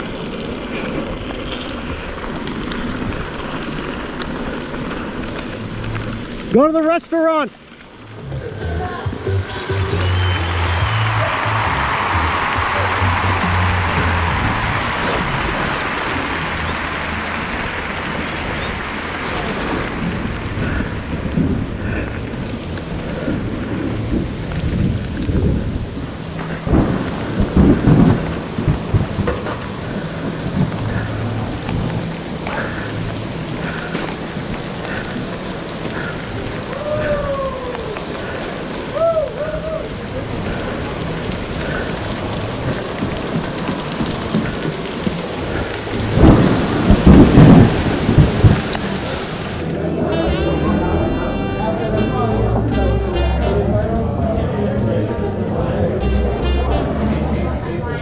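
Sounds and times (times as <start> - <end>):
heavy rain: 0.0 - 58.0
thunder rumble: 7.5 - 58.0.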